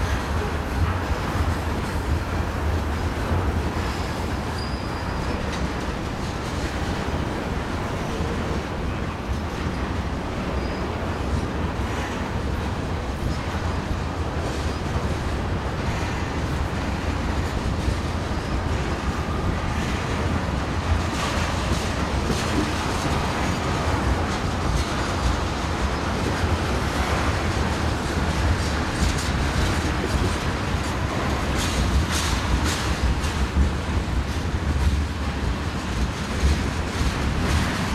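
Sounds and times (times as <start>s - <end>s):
steel wheels rumbling on rails: 0.0s - 37.9s
wheels clacking: 13.2s - 37.9s.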